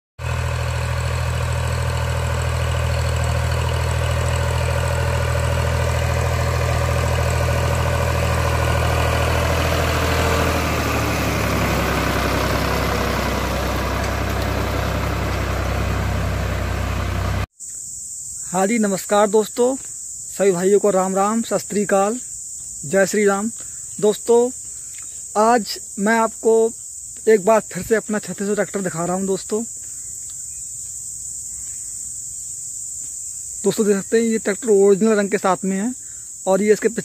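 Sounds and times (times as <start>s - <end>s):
tractor diesel engine running: 0.2s - 17.5s.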